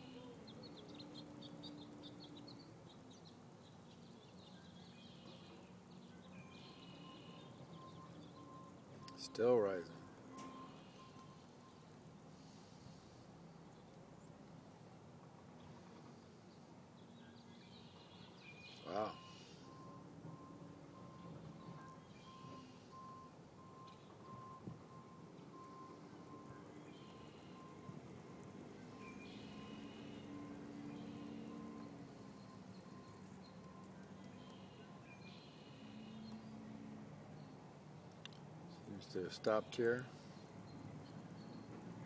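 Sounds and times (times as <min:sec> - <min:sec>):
faint steady tones: 0:00.0 - 0:42.0
short electronic beeps: 0:06.9 - 0:11.4, 0:18.8 - 0:28.0.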